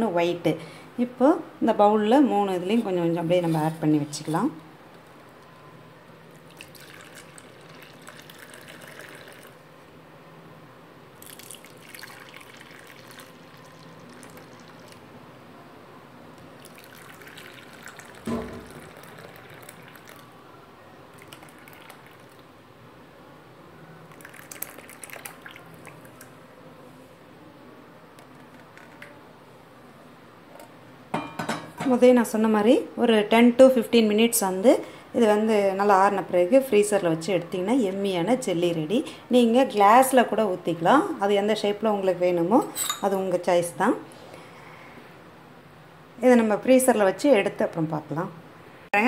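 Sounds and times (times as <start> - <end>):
liquid pouring and splashing: 6.3 - 9.6, 11.2 - 15.0, 16.6 - 20.3, 21.1 - 22.5, 24.1 - 26.3
sharp knock: 18.3 - 18.7.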